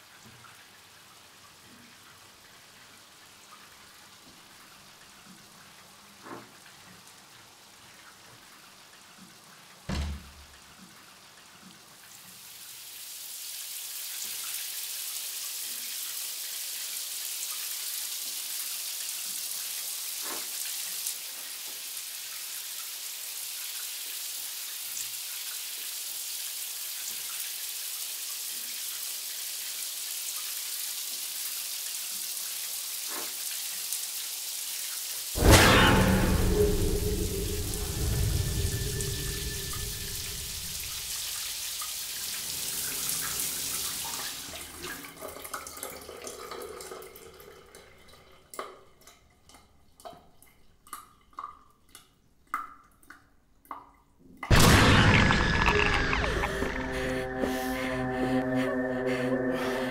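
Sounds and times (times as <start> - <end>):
boom with falling sweep: 35.4 - 41.0, 54.5 - 58.7
water drips: 36.6 - 54.1
shower spray hissing: 36.9 - 44.6.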